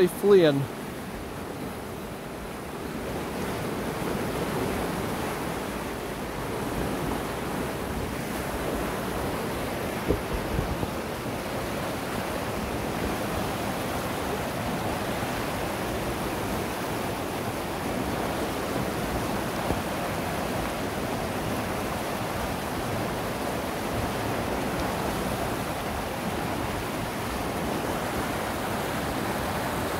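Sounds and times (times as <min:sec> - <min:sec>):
rushing river water: 0:00.0 - 0:29.9.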